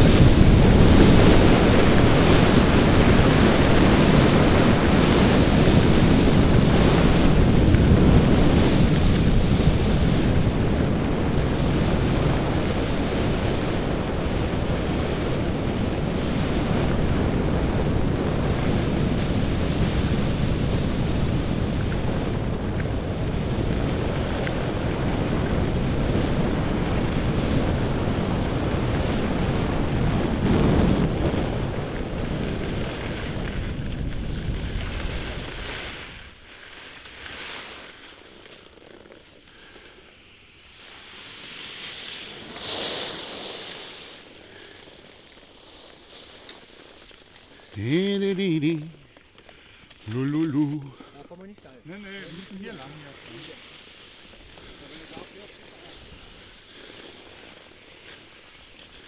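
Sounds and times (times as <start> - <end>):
wind rushing over microphone: 0.0 - 36.5
skis hissing on snow: 28.7 - 38.5, 39.2 - 59.0.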